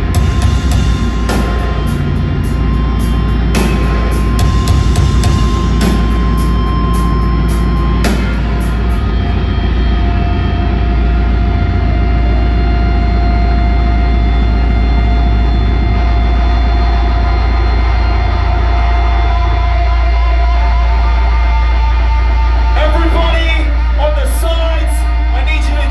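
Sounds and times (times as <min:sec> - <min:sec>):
distorted band drone: 0:00.0 - 0:25.9
feedback whine: 0:00.0 - 0:25.9.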